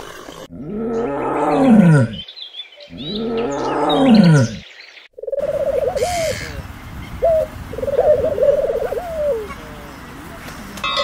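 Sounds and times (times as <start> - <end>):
tiger roaring: 0.0 - 2.2, 2.9 - 4.6
pigeons cooing: 2.9 - 4.6, 5.2 - 10.0.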